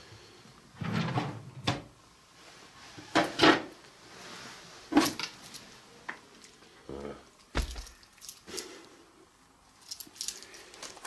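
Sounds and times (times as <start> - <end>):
drawer clunks: 7.6 - 8.0.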